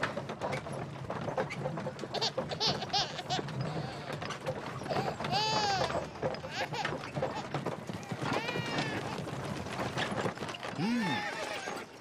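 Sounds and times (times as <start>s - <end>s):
horse hooves clopping on dirt: 0.0s - 12.0s.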